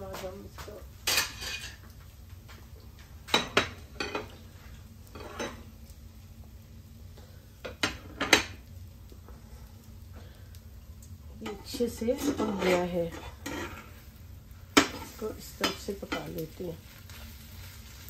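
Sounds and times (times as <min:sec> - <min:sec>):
tongs and plate clinking on cookware: 0:01.0 - 0:02.6, 0:03.2 - 0:04.4, 0:05.0 - 0:05.7, 0:07.6 - 0:08.7, 0:11.3 - 0:14.1, 0:14.7 - 0:17.2.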